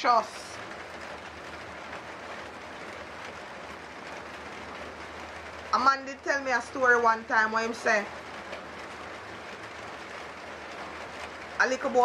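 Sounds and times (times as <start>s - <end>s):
steady rain falling: 0.0s - 12.0s.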